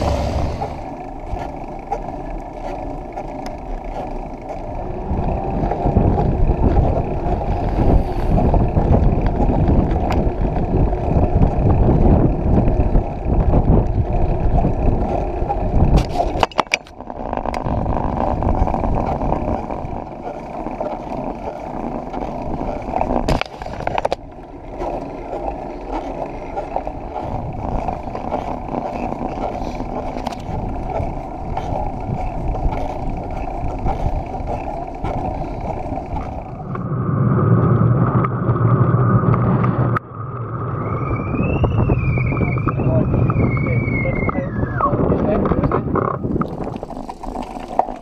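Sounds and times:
loud low rumble: 0:00.0 - 0:01.0, 0:35.2 - 0:45.7
wind on microphone: 0:00.0 - 0:01.5, 0:04.6 - 0:48.0
bike tyres on tarmac: 0:00.0 - 0:48.0
wavering high tone: 0:40.1 - 0:45.0.

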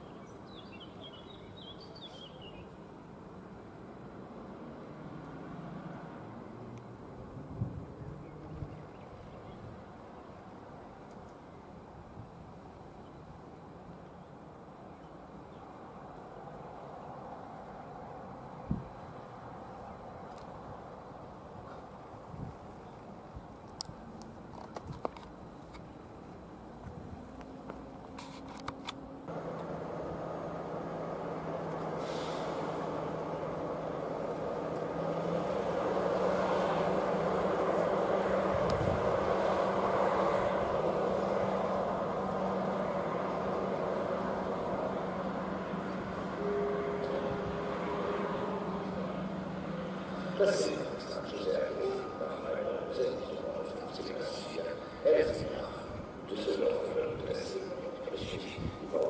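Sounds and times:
diesel locomotive engine drone: 0:00.0 - 0:59.0
train wheels rolling: 0:27.6 - 0:53.0.

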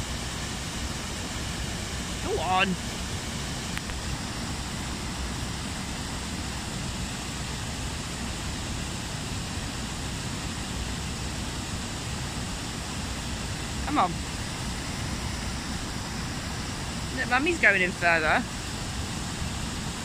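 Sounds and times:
small waterfall rushing: 0:00.0 - 0:20.0.

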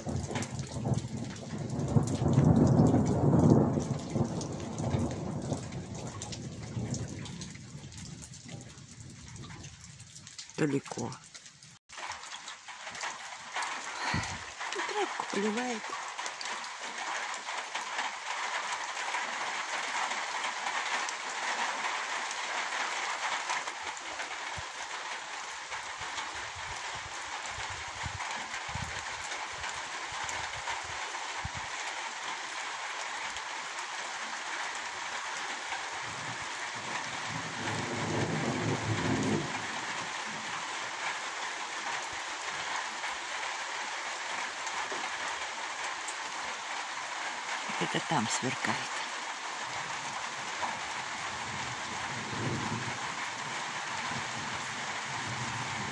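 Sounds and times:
distant thunder rumble: 0:00.0 - 0:07.9, 0:37.2 - 0:40.0
rain into water barrel: 0:00.0 - 0:55.9
rain on plants: 0:00.0 - 0:55.9.

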